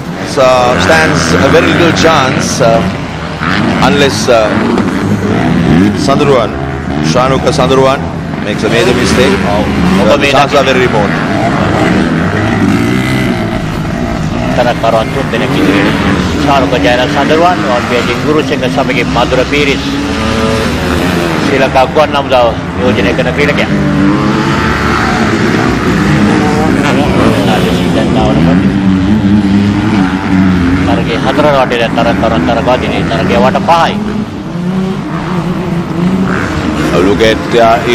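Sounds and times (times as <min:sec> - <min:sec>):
racing motorcycle engines droning: 0:00.0 - 0:37.9.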